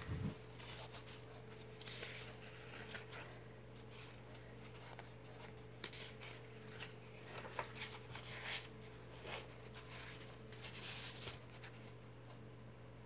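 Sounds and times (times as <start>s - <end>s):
paper rustling and sliding: 0.0s - 12.0s.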